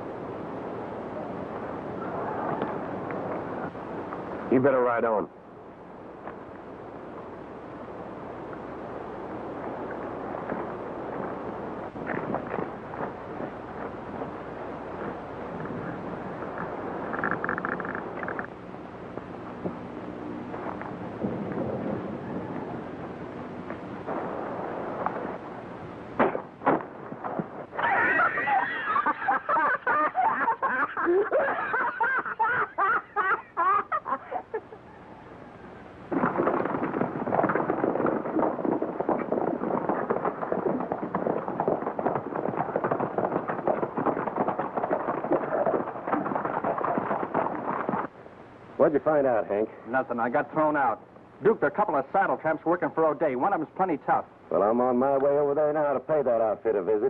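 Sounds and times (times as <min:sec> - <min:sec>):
horse galloping hoofbeats: 0:09.8 - 0:24.0, 0:34.9 - 0:48.2
man and girl laughing: 0:27.8 - 0:34.9.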